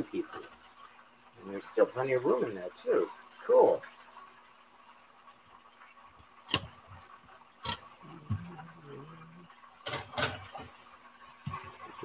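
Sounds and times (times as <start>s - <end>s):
chicken sizzling in hot oil: 0.0s - 12.0s.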